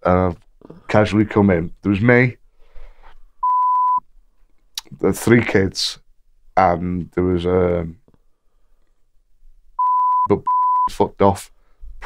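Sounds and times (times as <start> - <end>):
censor bleep: 3.4 - 4.0, 9.8 - 10.9.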